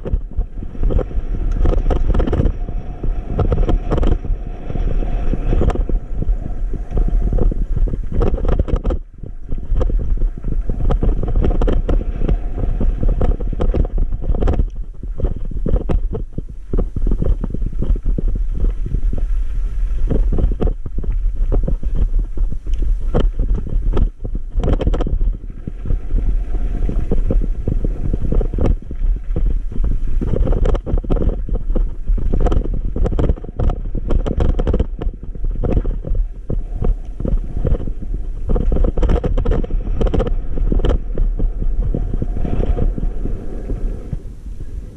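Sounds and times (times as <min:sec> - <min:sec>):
bike jolts and rattles: 0:00.0 - 0:43.5
e-bike rumble: 0:00.0 - 0:44.9
wind on microphone: 0:00.0 - 0:44.9.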